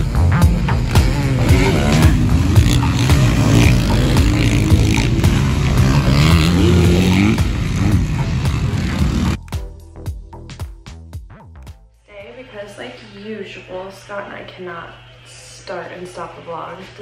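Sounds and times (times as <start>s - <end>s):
dirt bike engines revving: 0.0s - 9.4s
background music: 0.0s - 16.8s.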